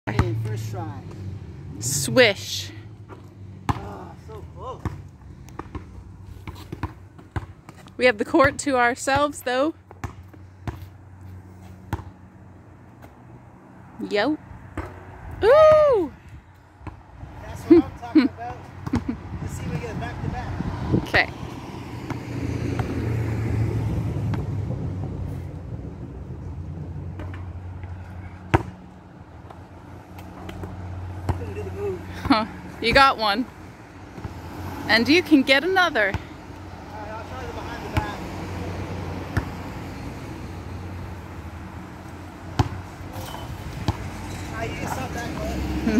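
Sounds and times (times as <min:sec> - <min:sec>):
basketball bouncing on asphalt: 0:00.1 - 0:01.8, 0:02.9 - 0:45.6
passing car engine: 0:00.1 - 0:06.8, 0:18.6 - 0:45.9.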